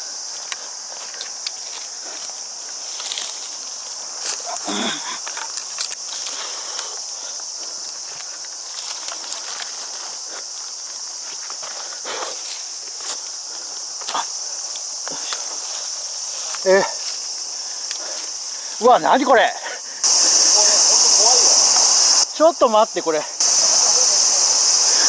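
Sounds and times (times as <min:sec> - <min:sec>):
branches scraping: 0:00.0 - 0:17.4
leaves and twigs rustling: 0:00.0 - 0:22.7, 0:23.4 - 0:25.0
insects droning: 0:00.0 - 0:25.0
person grunting: 0:04.5 - 0:05.2.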